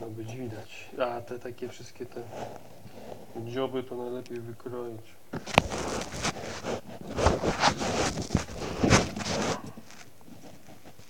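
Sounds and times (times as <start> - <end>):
rustling and scraping on plastic bag: 0.1 - 3.6, 5.3 - 11.0.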